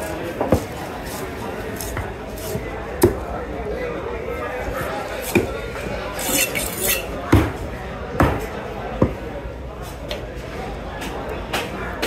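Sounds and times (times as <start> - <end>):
scraping: 6.1 - 7.2.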